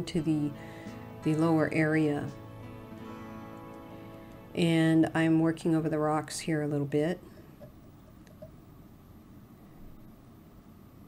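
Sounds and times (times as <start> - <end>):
faint low hum: 3.6 - 11.0.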